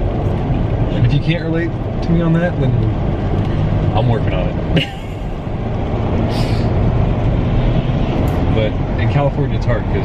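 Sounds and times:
road and engine rumble in car: 0.0 - 10.0
tyres on wet road: 0.0 - 10.0.

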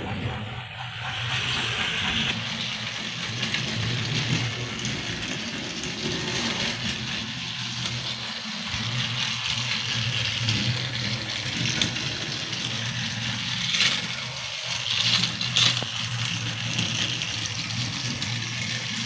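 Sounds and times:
toy train motor drone: 0.0 - 19.0
wheels rattling on track: 0.0 - 19.0.

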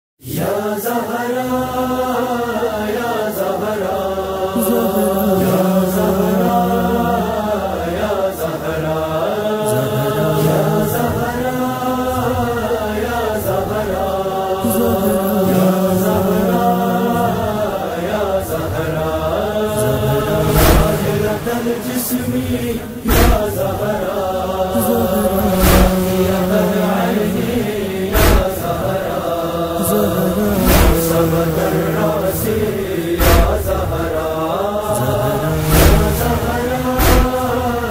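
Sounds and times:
male voices chanting a lament: 0.2 - 37.9
deep thumps: 20.5 - 21.1, 23.1 - 23.7, 25.4 - 26.3, 28.1 - 28.7, 30.6 - 31.3, 33.2 - 34.1, 35.5 - 37.6.

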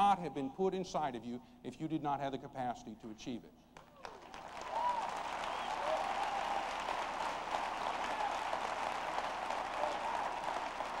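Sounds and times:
audience applauding: 3.8 - 11.0.

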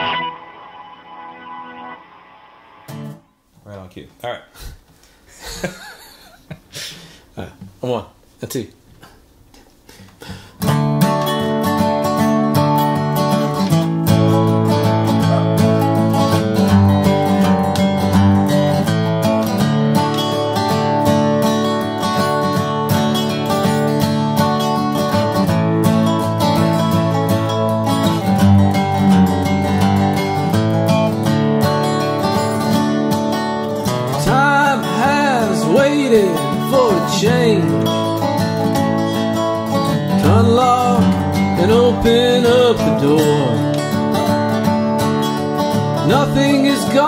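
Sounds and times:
resonator guitar picking: 0.0 - 3.3, 10.6 - 47.0
acoustic guitar strumming: 0.0 - 3.4, 10.3 - 47.0
man singing: 34.1 - 38.1, 40.2 - 43.8, 46.0 - 47.0.

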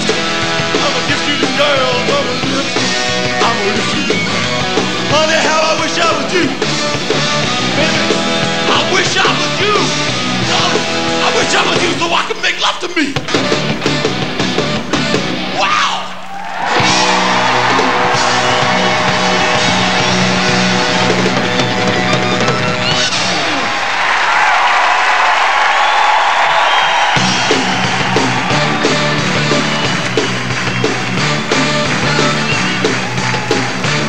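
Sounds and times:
loud rock band music: 0.0 - 34.0.

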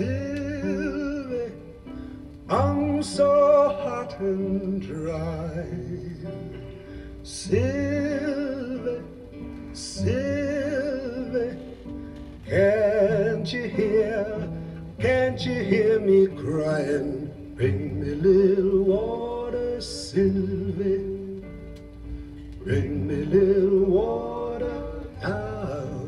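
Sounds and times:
acoustic guitar: 0.0 - 26.0
man singing folk song: 0.0 - 26.0.

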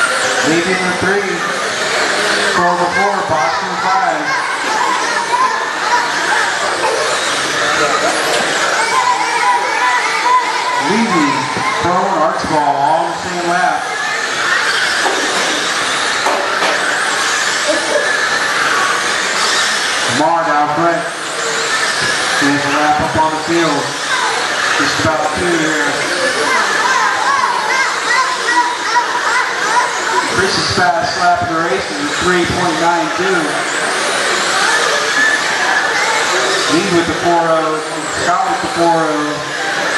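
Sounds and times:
crowd chatter: 0.0 - 39.9
rc car motors whining: 0.0 - 39.9.

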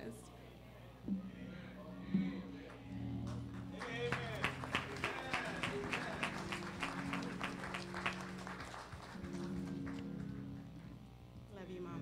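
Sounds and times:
music of held low chords: 0.0 - 12.0
congregation clapping in rhythm: 2.4 - 11.1.

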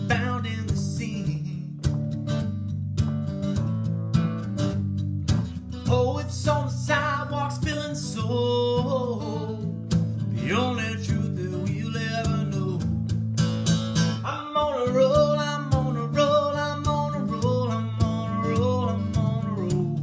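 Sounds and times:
man singing: 0.0 - 1.9, 5.8 - 13.0, 14.2 - 20.0
strummed acoustic guitar: 0.0 - 20.0.

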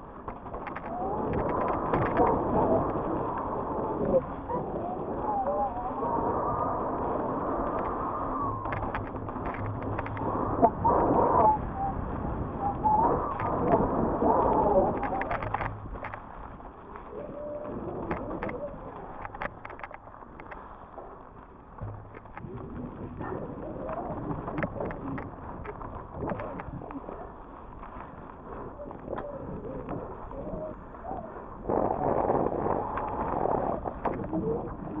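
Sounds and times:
wind on microphone: 0.0 - 35.0.

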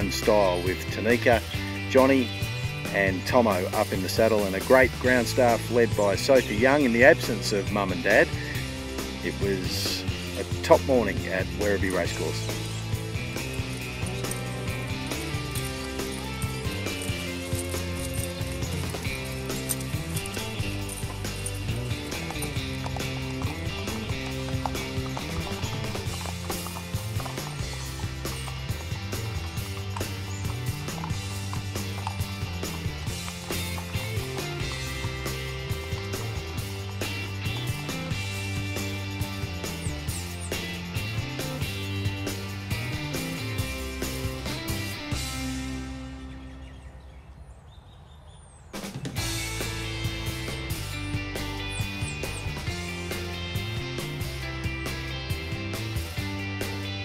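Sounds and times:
background music with steady beat: 0.0 - 46.1, 49.1 - 57.0.

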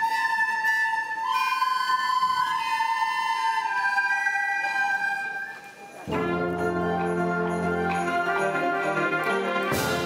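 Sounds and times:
recorder ensemble playing slow tune: 0.0 - 10.0.

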